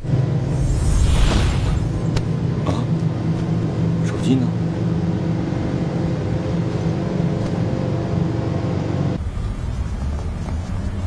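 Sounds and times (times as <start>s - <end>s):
steady low rumble: 0.0s - 11.0s.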